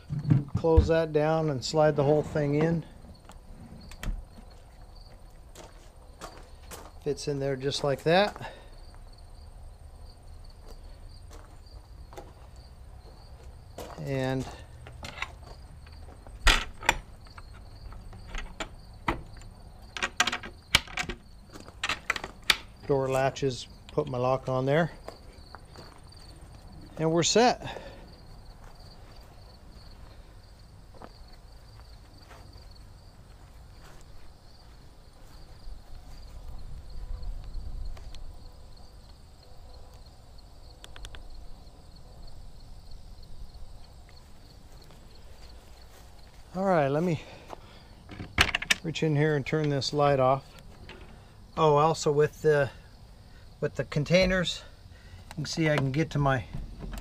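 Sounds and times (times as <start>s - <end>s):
faint insect chirring: 2.7s - 57.0s
footsteps on grass: 10.6s - 14.7s, 24.9s - 27.1s, 28.5s - 30.2s, 30.9s - 36.6s, 44.1s - 47.7s
metal latch clicks: 16.4s - 21.2s, 48.1s - 48.8s, 56.8s - 57.0s.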